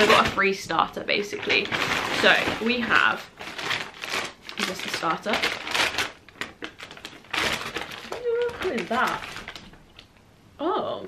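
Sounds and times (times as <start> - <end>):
paper bag rustling: 0.0 - 10.0.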